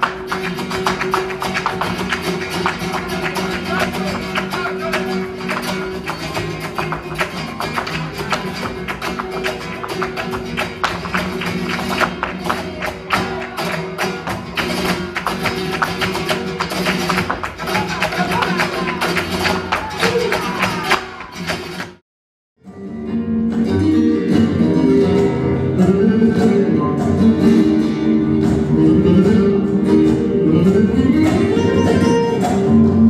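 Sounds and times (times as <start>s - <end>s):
acoustic flamenco guitars: 0.0s - 22.0s, 22.6s - 33.0s.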